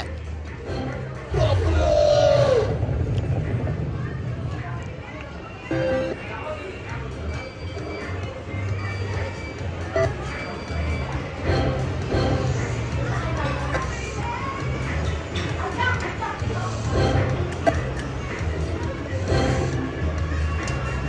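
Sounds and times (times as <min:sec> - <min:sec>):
casino background chatter: 0:00.0 - 0:21.0
other gaming machines: 0:05.6 - 0:15.4, 0:16.0 - 0:21.0
slot machine music and jingles: 0:09.9 - 0:12.9.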